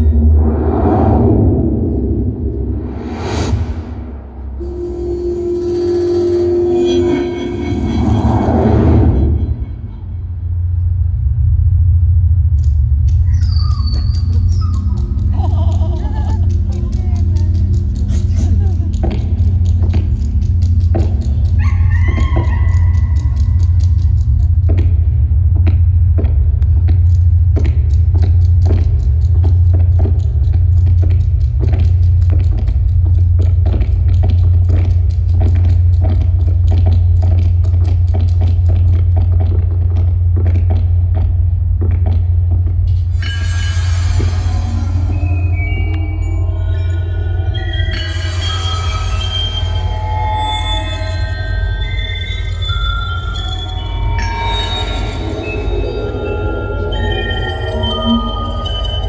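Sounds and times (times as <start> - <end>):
deep rumbling drone: 0.0 - 59.0
high gliding squealing tones: 4.6 - 10.6, 43.1 - 59.0
fast run of clicks: 12.6 - 25.8, 26.6 - 42.3.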